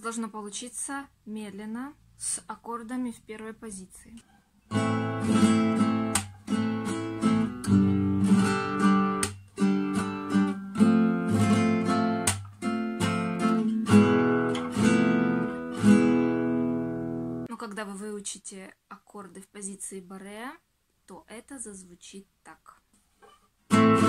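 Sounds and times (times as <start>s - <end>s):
classical guitar strumming chords: 4.7s - 17.5s, 23.7s - 24.0s.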